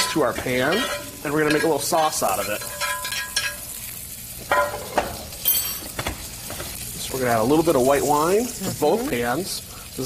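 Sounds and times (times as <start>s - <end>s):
utensils clinking against metal pans: 0.0s - 6.8s
fish and butter sizzling in pans: 0.0s - 10.0s.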